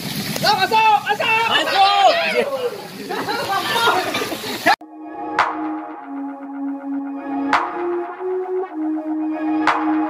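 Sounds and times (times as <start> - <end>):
people talking and calling out: 0.5 - 4.8
steady low music tone: 4.8 - 10.0.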